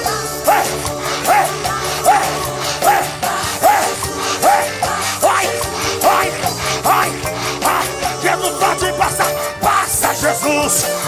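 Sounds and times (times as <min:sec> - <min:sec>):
rising-and-falling vocal cry: 0:00.0 - 0:10.2
worship music with steady beat: 0:00.0 - 0:11.0.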